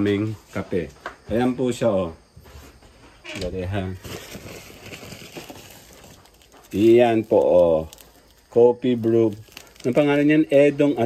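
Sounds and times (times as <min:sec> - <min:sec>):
plastic bag rustling: 0:03.8 - 0:10.3.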